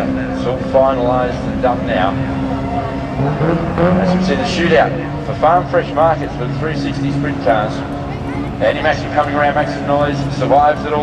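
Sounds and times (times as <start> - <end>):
race car engine at low revs: 0.0 - 11.0.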